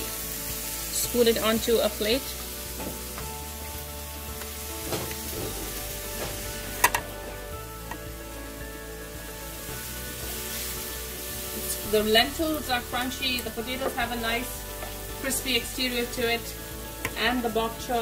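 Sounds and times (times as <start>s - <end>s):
soft background music: 0.0s - 18.0s
stir-fry pan sizzling: 0.0s - 18.0s.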